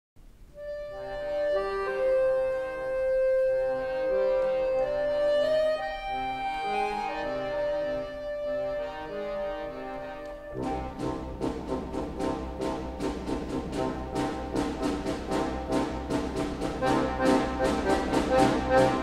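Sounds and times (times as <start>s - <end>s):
accordion melody: 0.4s - 19.0s.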